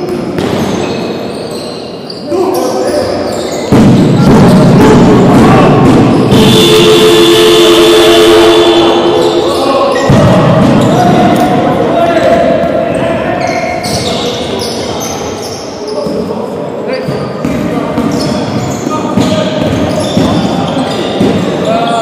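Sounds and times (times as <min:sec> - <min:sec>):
ball bouncing on wooden court: 0:00.0 - 0:01.0, 0:03.5 - 0:06.6, 0:10.0 - 0:11.6, 0:17.0 - 0:21.7
high squeaks: 0:00.5 - 0:04.6, 0:13.0 - 0:16.2, 0:18.1 - 0:22.0
voices calling out: 0:00.5 - 0:16.2
steady held tone: 0:06.3 - 0:10.3.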